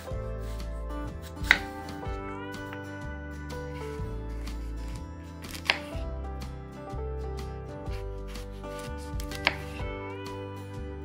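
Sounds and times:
knife slicing apple: 0:00.0 - 0:02.0, 0:03.7 - 0:06.0, 0:07.9 - 0:09.9
soft guitar music: 0:00.0 - 0:11.0.

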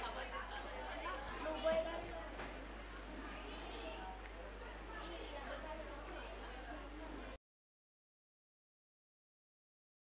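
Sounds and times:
indistinct chatter of voices: 0:00.0 - 0:07.4.

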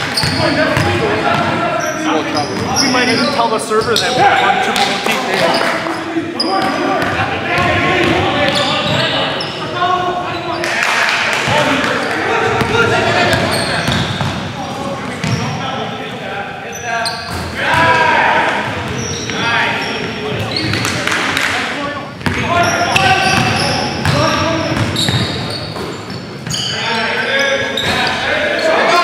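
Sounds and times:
sneakers squeaking: 0:00.0 - 0:10.8, 0:11.4 - 0:15.8, 0:16.7 - 0:21.5, 0:22.1 - 0:29.0
indistinct voices in gym: 0:00.0 - 0:29.0.

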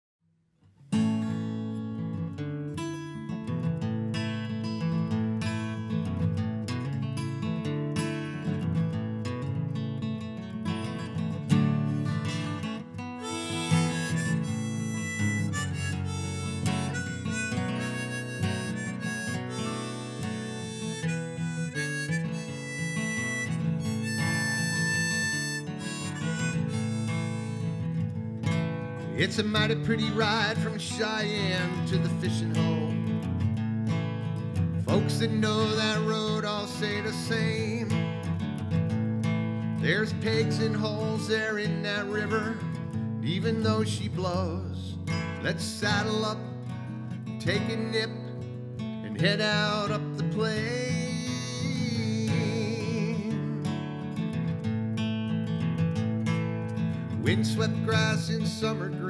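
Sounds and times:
acoustic guitar strumming: 0:00.8 - 0:59.0
harmonica melody: 0:11.9 - 0:33.2, 0:34.9 - 0:38.4, 0:39.8 - 0:44.0, 0:45.2 - 0:48.3, 0:49.1 - 0:54.1.

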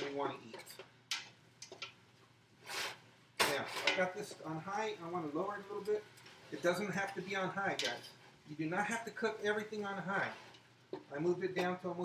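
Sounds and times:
man sniffing: 0:02.6 - 0:03.0
man speaking: 0:03.4 - 0:10.4, 0:11.1 - 0:12.0.

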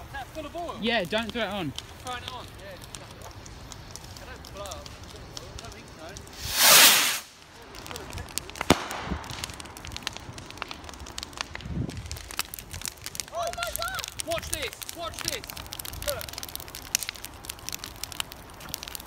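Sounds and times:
bonfire crackling: 0:00.0 - 0:19.0
sharp crack: 0:00.3 - 0:19.0
loud rushing burst: 0:06.4 - 0:07.3.

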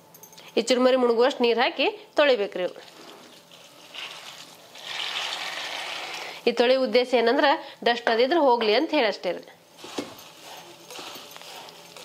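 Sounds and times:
water pouring into a steel pot: 0:02.7 - 0:06.3.

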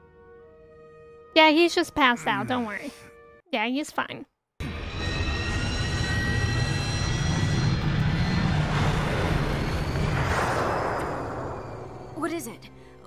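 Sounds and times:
starship engine whooshing roar: 0:05.0 - 0:12.2.

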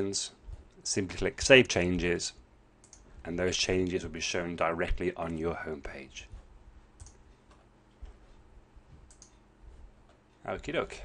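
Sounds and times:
faint computer mouse clicks: 0:02.8 - 0:03.1, 0:07.0 - 0:07.7, 0:09.0 - 0:09.4.

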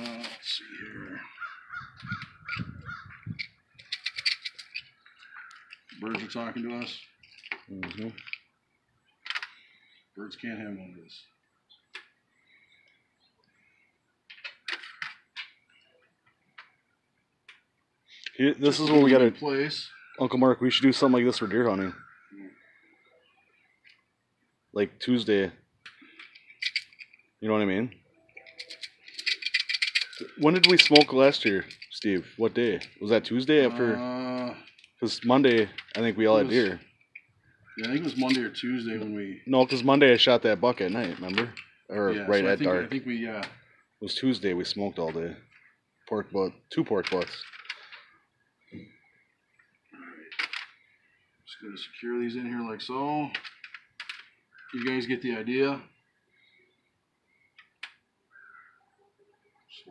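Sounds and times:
birds calling: 0:00.0 - 0:59.9.

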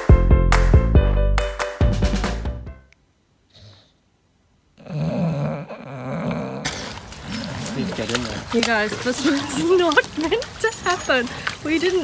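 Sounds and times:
wind: 0:02.8 - 0:12.0
rustling: 0:06.7 - 0:12.0.

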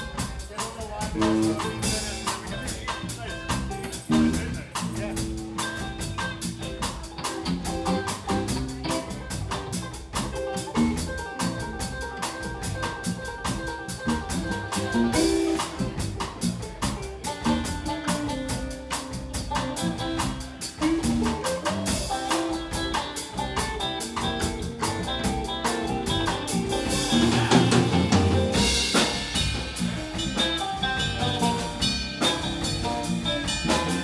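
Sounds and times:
drum kit: 0:00.0 - 0:34.0
electric bass: 0:00.0 - 0:34.0
electric guitar: 0:00.0 - 0:34.0.

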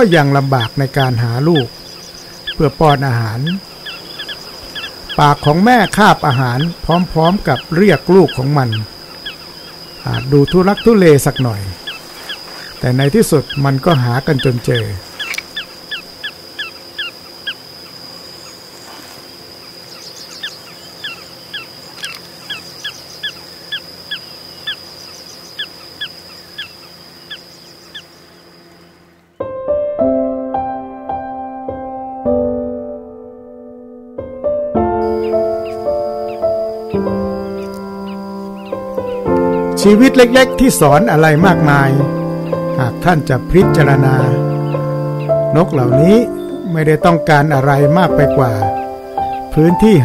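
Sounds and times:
man speaking: 0:00.0 - 0:01.7, 0:02.6 - 0:03.6, 0:05.2 - 0:08.9, 0:10.0 - 0:11.8, 0:12.8 - 0:15.1, 0:39.8 - 0:42.1, 0:42.8 - 0:44.4, 0:45.5 - 0:48.7, 0:49.5 - 0:50.0
bird high chirps: 0:00.0 - 0:19.0, 0:19.6 - 0:29.4, 0:35.0 - 0:50.0.

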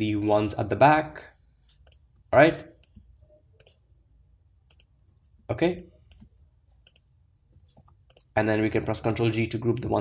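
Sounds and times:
mouse button clicking: 0:06.1 - 0:08.3.

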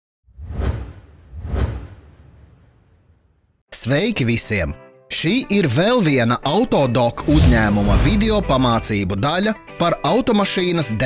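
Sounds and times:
deep rumble: 0:07.2 - 0:08.9
whoosh sound effects: 0:07.2 - 0:09.0.

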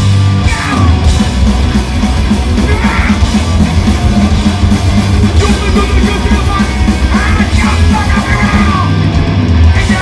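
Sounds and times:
punk band playing live: 0:00.0 - 0:10.0
singer yelling: 0:00.4 - 0:01.1, 0:02.6 - 0:03.4, 0:05.2 - 0:09.1, 0:09.7 - 0:10.0.

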